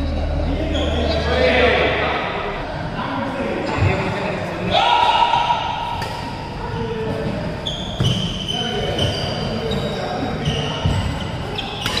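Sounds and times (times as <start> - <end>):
shoes squeaking on court floor: 7.0 - 12.0.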